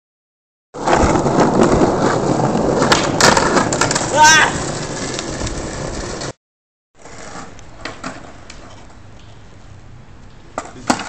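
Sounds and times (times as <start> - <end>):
skateboard wheels rumbling on paving: 0.8 - 6.4, 7.0 - 9.1.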